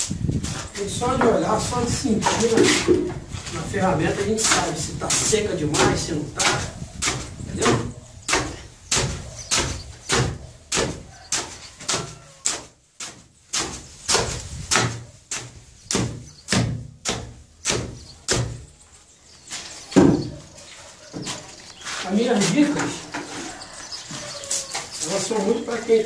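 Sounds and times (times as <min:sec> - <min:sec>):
hoe scraping and chopping mortar: 0:00.0 - 0:26.0.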